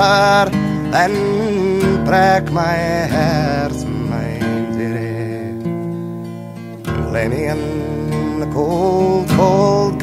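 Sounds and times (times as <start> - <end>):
man singing: 0.0 - 5.8, 6.9 - 10.0
acoustic guitar strumming: 0.0 - 10.0.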